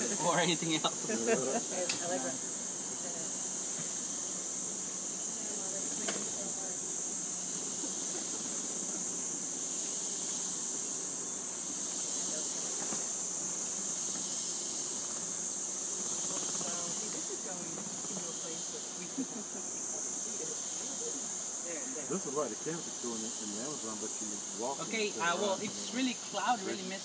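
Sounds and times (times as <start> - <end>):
insects calling in high drone: 0.0 - 27.0.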